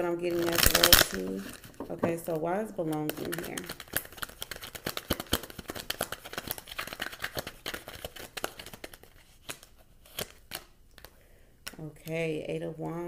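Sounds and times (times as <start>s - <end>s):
cards being shuffled: 0.3s - 2.0s, 2.8s - 11.8s.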